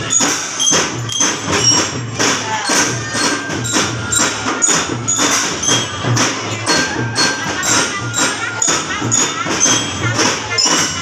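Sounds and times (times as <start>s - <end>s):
drums steady beat: 0.0s - 11.0s
glockenspiel notes: 0.0s - 11.0s.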